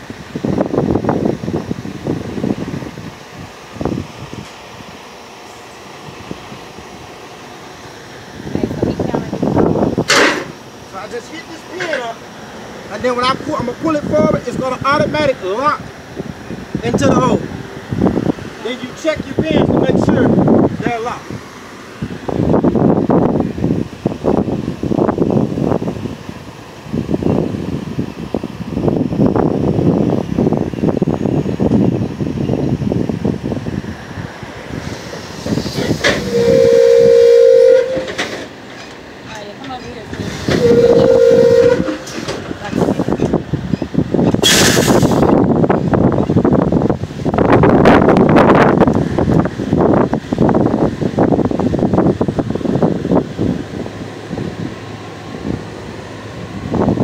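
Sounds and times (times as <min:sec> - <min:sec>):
wind rumble on microphone: 0:00.0 - 0:05.2, 0:05.9 - 0:07.2, 0:08.0 - 0:38.5, 0:39.3 - 0:57.0
two-tone horn blasts: 0:35.8 - 0:38.5, 0:40.4 - 0:42.4
short sharp hiss: 0:44.4 - 0:45.3.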